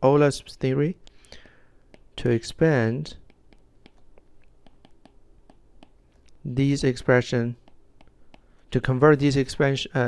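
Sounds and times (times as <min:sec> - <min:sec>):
stylus tapping on glass screen: 0:01.4 - 0:02.2, 0:03.2 - 0:06.0, 0:07.6 - 0:08.5.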